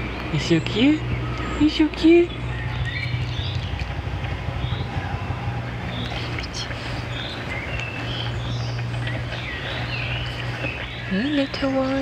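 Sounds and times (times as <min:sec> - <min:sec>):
small birds chirping: 0:00.0 - 0:12.0
steady low hum: 0:00.0 - 0:12.0.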